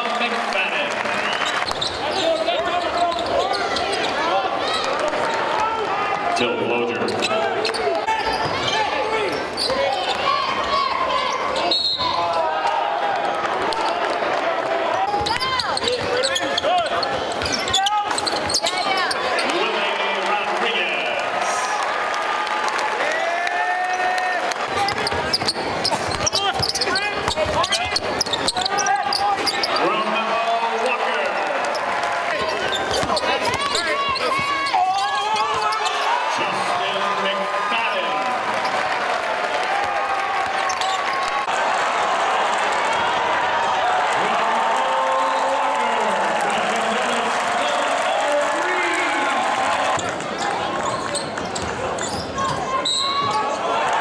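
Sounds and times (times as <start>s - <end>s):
crowd voices and shouts: 0.0s - 54.0s
sneakers squeaking: 1.2s - 5.4s, 6.9s - 12.5s, 15.0s - 19.8s, 23.9s - 37.0s, 40.4s - 41.5s, 49.9s - 53.6s
basketball bouncing on hardwood: 32.9s - 34.7s.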